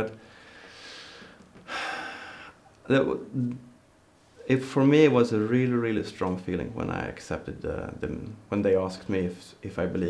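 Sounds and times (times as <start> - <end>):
man breathing in: 0.2 - 2.6
man speaking: 2.9 - 3.7, 4.4 - 10.0.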